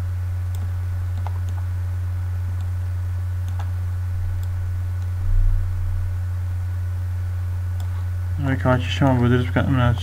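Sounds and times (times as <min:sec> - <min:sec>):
steady low hum: 0:00.0 - 0:10.0
computer mouse clicks: 0:00.5 - 0:01.7, 0:02.6 - 0:02.8, 0:03.4 - 0:03.7, 0:07.8 - 0:08.1.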